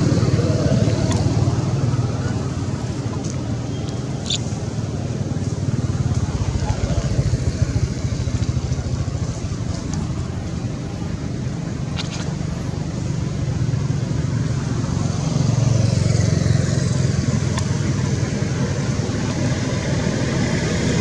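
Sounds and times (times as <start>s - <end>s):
low pulsing engine rumble: 0.0s - 16.0s
sharp click: 4.2s - 4.5s.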